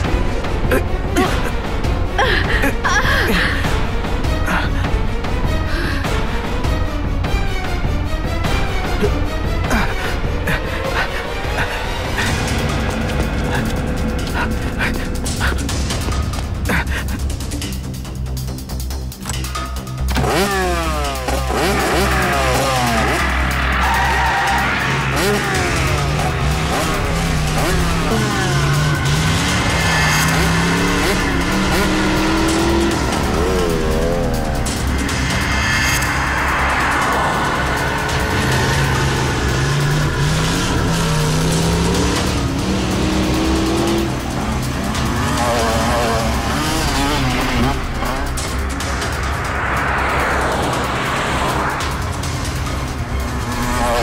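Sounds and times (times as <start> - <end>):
car engine revving: 0.0 - 54.0
tense background music: 0.0 - 54.0
tyres screeching: 20.1 - 48.8.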